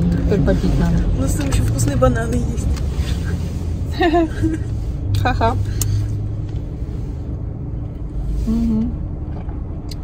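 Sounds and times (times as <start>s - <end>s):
car rumble inside cabin: 0.0s - 10.0s
person humming: 8.4s - 9.0s.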